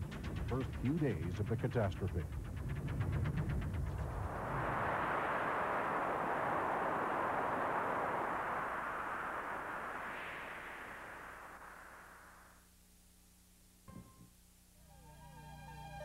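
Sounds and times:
rushing wind: 0:02.4 - 0:12.6.

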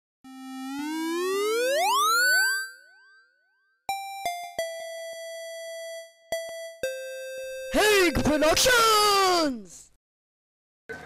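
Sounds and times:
rising electronic tone: 0:00.3 - 0:03.2.

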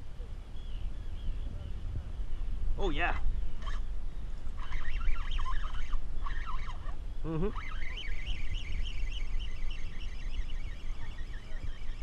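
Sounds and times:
wind rumble on microphone: 0:00.0 - 0:12.0
seabirds calling: 0:02.3 - 0:12.0.

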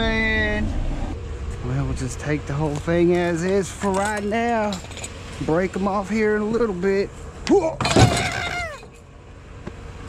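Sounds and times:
metal clatter in truck bed: 0:03.8 - 0:05.2.

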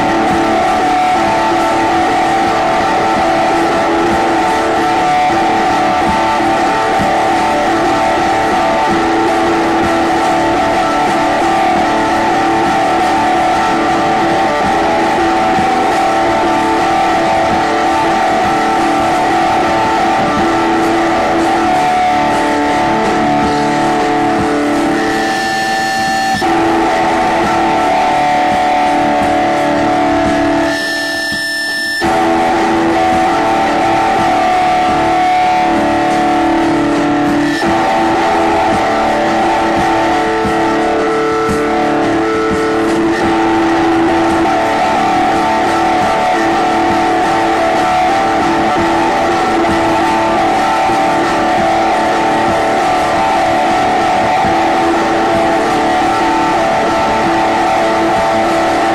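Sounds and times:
live rock band with electric guitar: 0:00.0 - 0:58.9.

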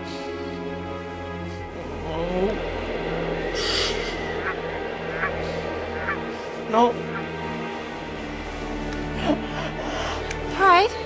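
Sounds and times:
music drone: 0:00.0 - 0:11.0
honking bird-like cries: 0:03.5 - 0:08.0.

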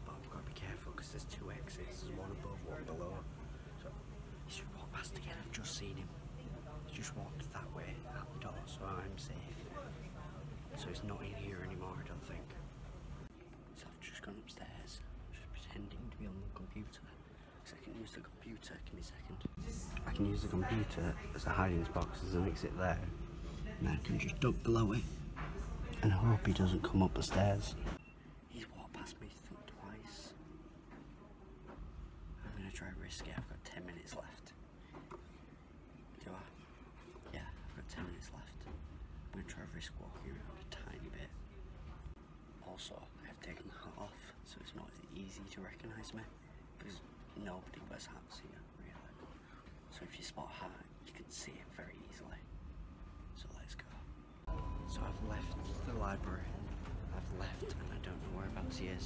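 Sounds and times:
man whispering: 0:00.0 - 0:03.6, 0:04.4 - 0:09.8, 0:13.6 - 0:25.2, 0:28.5 - 0:30.4, 0:32.4 - 0:34.6, 0:36.1 - 0:41.4, 0:42.5 - 0:52.5, 0:53.2 - 0:54.1, 0:54.9 - 0:59.0
steady low hum: 0:00.0 - 0:59.0.

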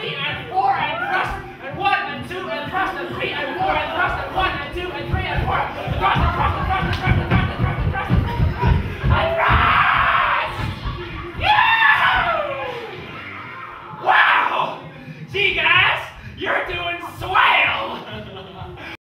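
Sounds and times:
music with thumping beat: 0:00.3 - 0:12.7, 0:15.4 - 0:18.9
performers whooping and shrieking: 0:00.5 - 0:01.6, 0:05.9 - 0:14.9.

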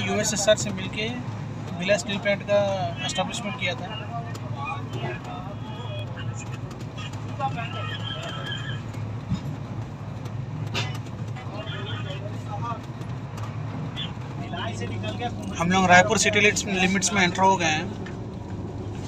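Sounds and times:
faint passenger voices: 0:00.0 - 0:18.4
train running low rumble: 0:00.0 - 0:19.0.

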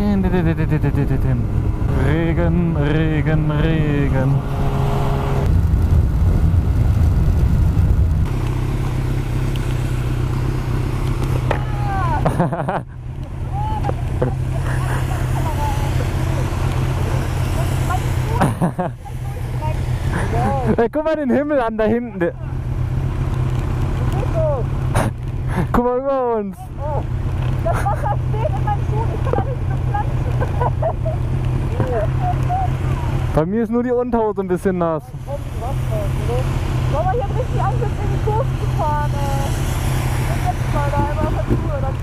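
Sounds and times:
motorcycle engines idling: 0:00.0 - 0:42.0
wind noise: 0:00.9 - 0:08.3
rain: 0:05.2 - 0:20.8, 0:22.2 - 0:33.4, 0:34.8 - 0:42.0
muffled voices and laughter: 0:13.6 - 0:16.2.

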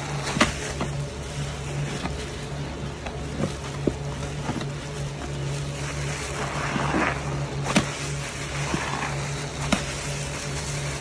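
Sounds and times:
sponges squelching in foam: 0:00.0 - 0:11.0
steady low hum: 0:00.0 - 0:11.0.

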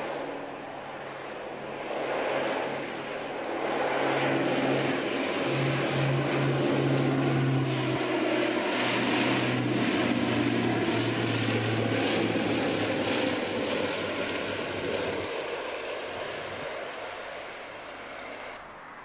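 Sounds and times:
propeller aircraft engines droning: 0:00.0 - 0:19.0.

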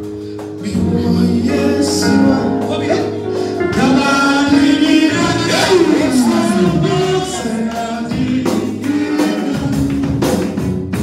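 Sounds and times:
congregation singing: 0:00.5 - 0:11.0
percussion hits: 0:03.6 - 0:11.0.

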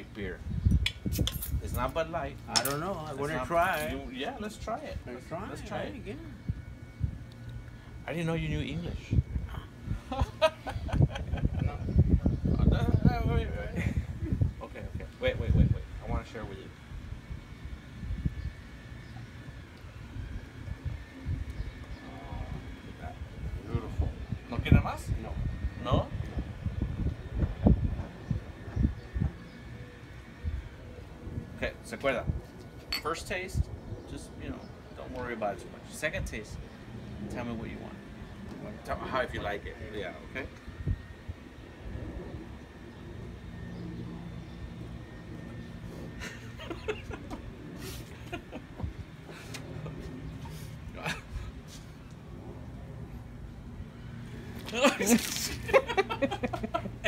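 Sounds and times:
vehicle engine rumble: 0:00.0 - 0:57.0.

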